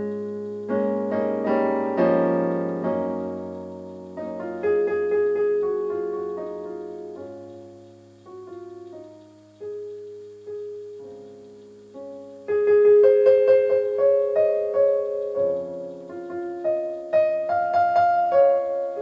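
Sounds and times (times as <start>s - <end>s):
gentle piano music: 0.0s - 19.0s.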